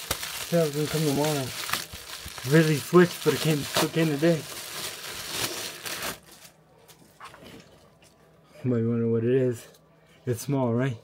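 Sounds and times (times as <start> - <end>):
paper package tearing and crinkling: 0.0 - 6.6.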